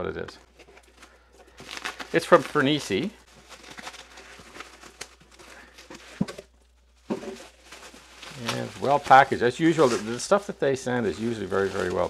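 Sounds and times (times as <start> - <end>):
bubble wrap crinkling: 0.0 - 12.0
cardboard box rustling: 3.4 - 9.2.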